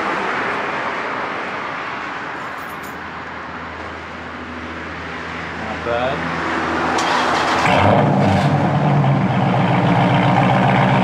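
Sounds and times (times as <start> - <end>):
outdoor rumble: 6.3 - 11.0.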